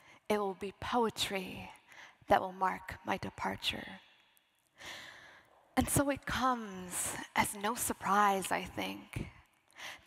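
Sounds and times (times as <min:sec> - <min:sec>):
woman speaking: 0:00.3 - 0:04.0, 0:05.8 - 0:09.3
woman breathing: 0:04.6 - 0:05.7, 0:09.7 - 0:10.0.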